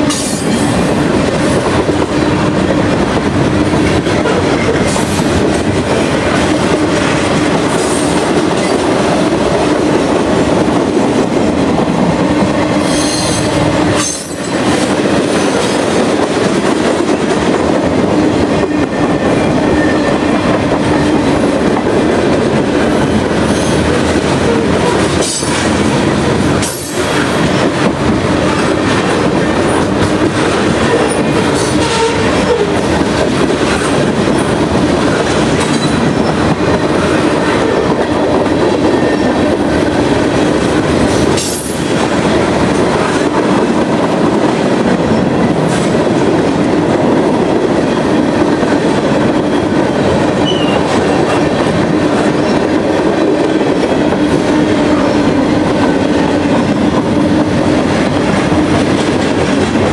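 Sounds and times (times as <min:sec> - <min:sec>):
train wheels rumbling on rails: 0:00.0 - 0:59.9.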